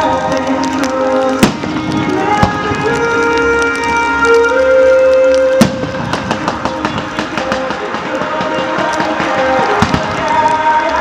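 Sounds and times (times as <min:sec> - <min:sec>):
fireworks popping and crackling: 0:00.0 - 0:11.0
music with long held notes: 0:00.0 - 0:11.0.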